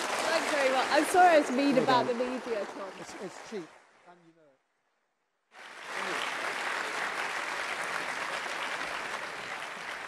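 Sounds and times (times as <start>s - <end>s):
audience applause: 0.0s - 2.6s, 5.6s - 10.0s.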